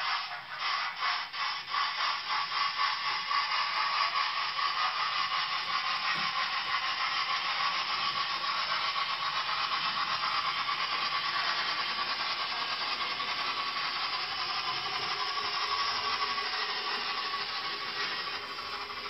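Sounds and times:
faint motor whine: 0.0s - 19.0s
model train running on track: 0.0s - 19.0s.

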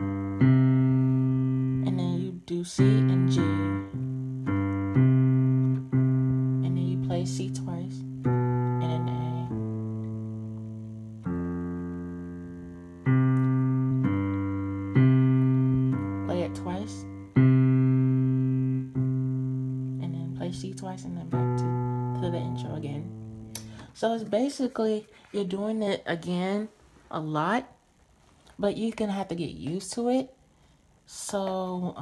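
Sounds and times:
digital piano playing slow chords: 0.0s - 23.9s.

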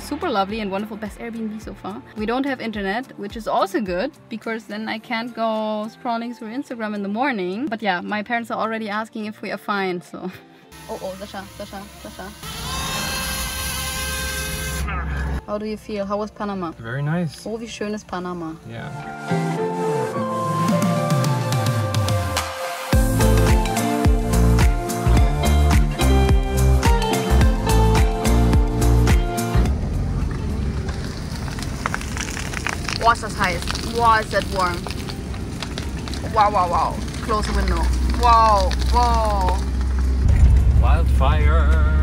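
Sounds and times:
grass fire crackling: 0.0s - 4.1s, 29.6s - 41.5s
background music: 0.0s - 29.9s, 32.9s - 42.0s
drone propellers whining: 11.0s - 15.4s
car rumbling with window open: 29.6s - 32.1s.

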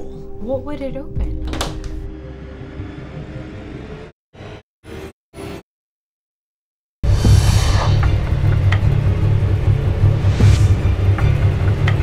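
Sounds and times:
low rumbling drone: 7.0s - 12.0s.

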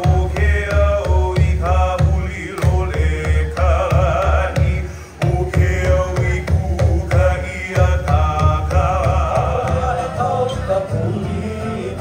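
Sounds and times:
steady low drum beat: 0.0s - 10.4s
voices singing chant-like melody: 0.0s - 12.0s.

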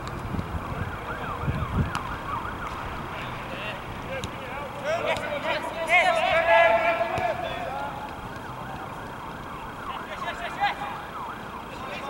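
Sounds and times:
emergency siren yelping: 0.5s - 3.8s, 5.6s - 12.0s.

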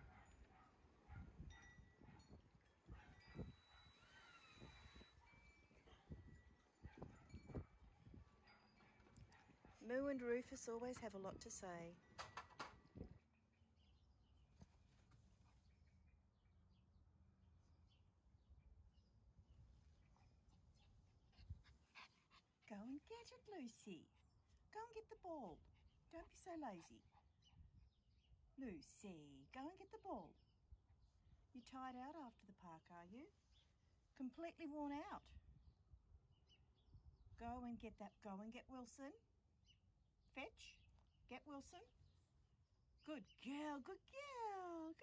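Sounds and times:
wind rumbling on microphone: 0.0s - 9.9s, 11.0s - 13.3s, 19.3s - 21.9s
small dog panting: 20.2s - 22.7s.

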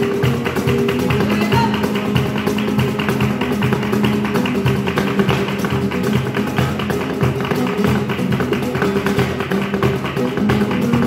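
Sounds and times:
acoustic guitar: 0.0s - 11.0s
cajon drumming: 0.0s - 11.0s
dance shoes tapping on board: 0.0s - 11.0s.

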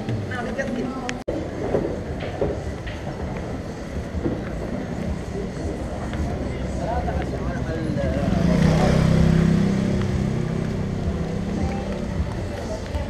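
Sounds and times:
faint voices: 0.0s - 13.0s
street music: 0.0s - 13.0s
street noise: 0.0s - 13.0s
motor scooter passing: 6.5s - 13.0s.

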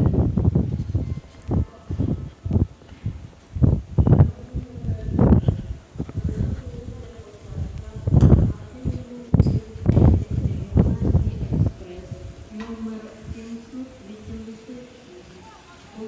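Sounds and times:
heavy low thumps: 0.0s - 12.3s.

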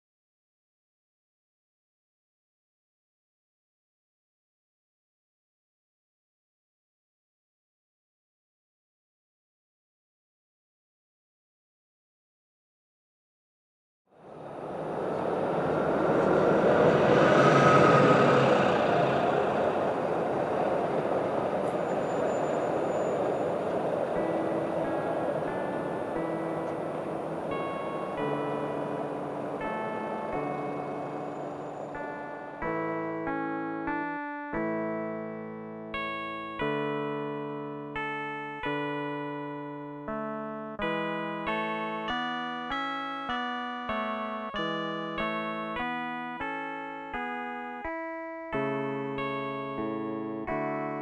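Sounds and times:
road vehicle passing: 14.2s - 32.6s
piano music: 14.3s - 51.0s.

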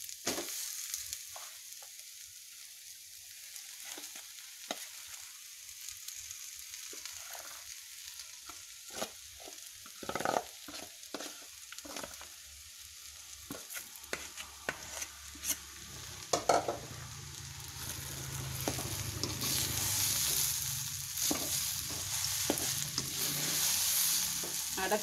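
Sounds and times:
food sizzling in a pan: 0.0s - 25.0s.

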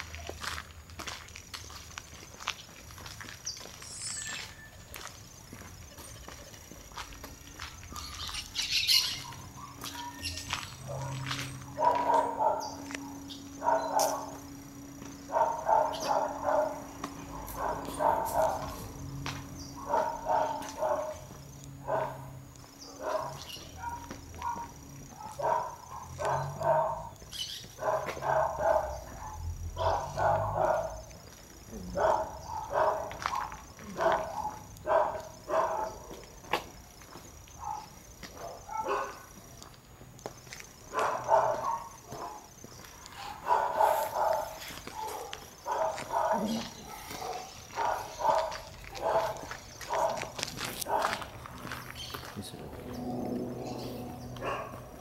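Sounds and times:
footsteps on pavement: 0.0s - 55.0s
dog barking: 9.0s - 14.4s, 15.2s - 19.0s, 19.8s - 31.0s, 31.8s - 36.3s, 37.6s - 39.4s, 40.9s - 42.5s, 43.1s - 51.4s, 54.3s - 55.0s.

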